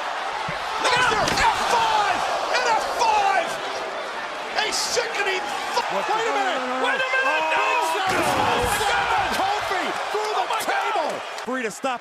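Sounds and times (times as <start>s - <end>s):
people yelling: 0.0s - 12.0s.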